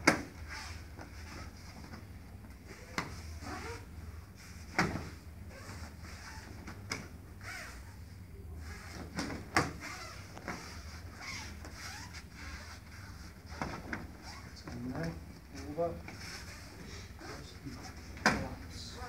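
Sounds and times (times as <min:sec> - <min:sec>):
bodies thudding on foam mats: 0:09.0 - 0:12.1, 0:13.4 - 0:14.8.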